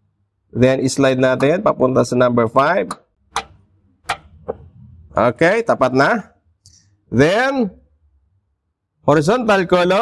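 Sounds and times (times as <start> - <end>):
metallic lever clicks: 2.9 - 4.6.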